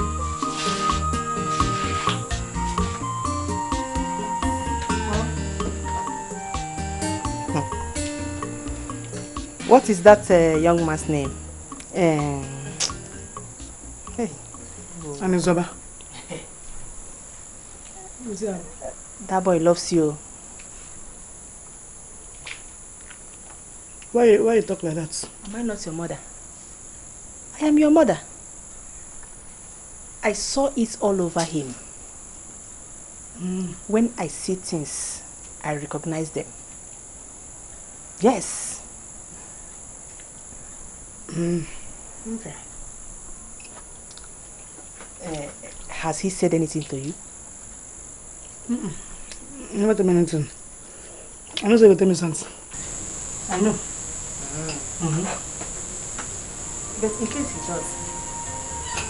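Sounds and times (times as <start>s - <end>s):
crickets chirring: 0.0s - 59.0s
people talking: 4.9s - 5.4s, 9.6s - 12.8s, 14.1s - 16.5s, 30.2s - 31.8s, 33.4s - 36.5s, 38.2s - 38.8s, 45.2s - 47.2s, 53.5s - 55.4s, 56.9s - 59.0s.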